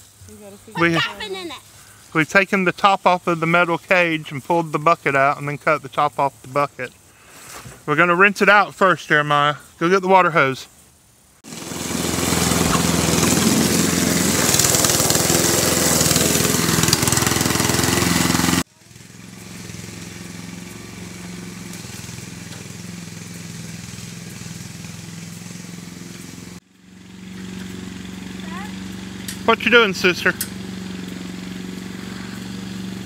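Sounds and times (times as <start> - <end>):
hose spraying water on plastic: 11.4 - 26.6
distant small engine hum: 11.5 - 33.0.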